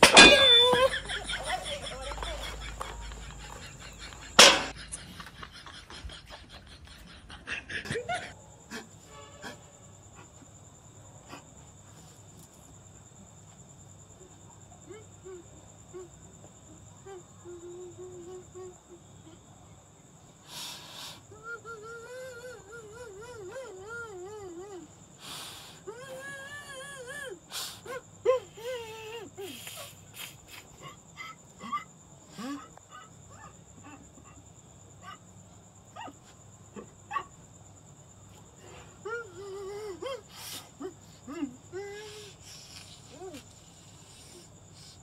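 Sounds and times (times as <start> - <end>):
man hooting through cupped hands: 0.0 - 8.9, 21.3 - 34.4
man whimpering and moaning: 21.3 - 24.9, 25.8 - 29.6, 30.8 - 33.1, 39.0 - 42.5, 43.1 - 43.4
gasps and sniffs: 29.4 - 31.0, 41.9 - 45.0.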